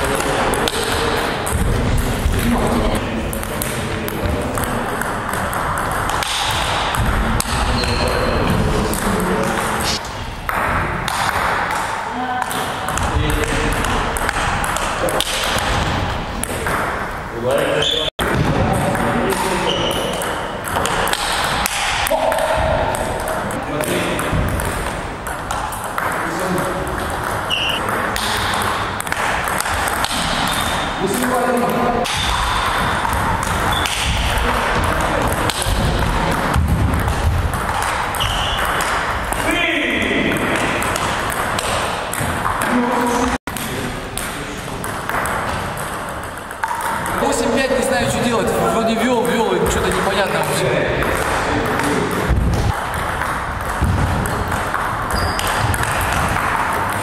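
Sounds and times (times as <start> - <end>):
table tennis ball striking paddles: 0.0 - 17.2, 18.2 - 57.0
ball bouncing on table: 0.2 - 9.7, 10.4 - 17.0, 18.2 - 39.5, 40.2 - 48.2, 49.1 - 57.0.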